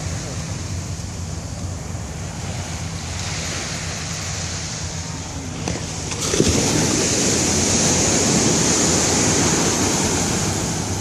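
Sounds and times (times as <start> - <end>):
ocean surf breaking on beach: 0.0 - 11.0
wind rumbling on microphone: 0.0 - 11.0.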